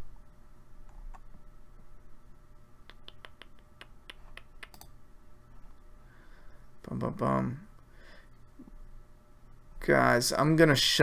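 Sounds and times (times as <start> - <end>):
faint steady hum: 0.0 - 11.0
computer mouse clicks: 2.9 - 5.0.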